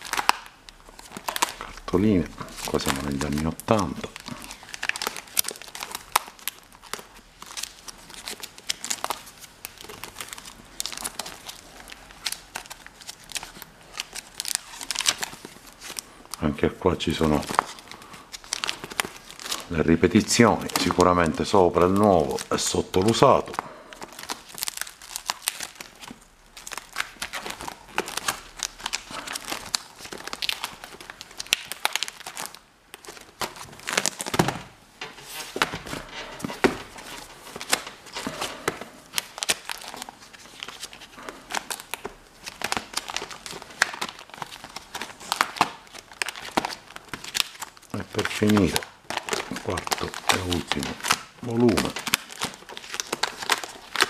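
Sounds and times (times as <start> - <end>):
plastic album pages rustling: 0.0 - 54.0.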